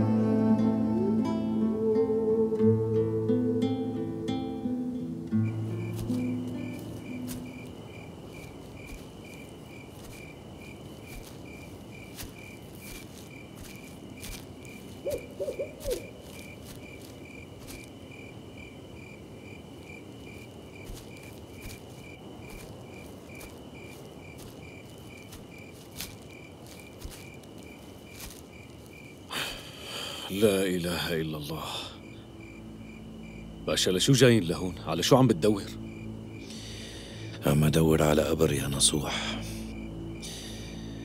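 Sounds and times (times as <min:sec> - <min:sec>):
crickets chirping: 0:00.0 - 0:41.0.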